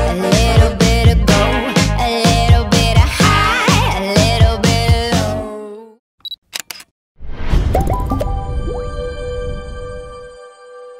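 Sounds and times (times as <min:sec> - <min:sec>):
sharp clicks: 0:06.2 - 0:06.9
sound effect with falling tones: 0:07.2 - 0:09.9.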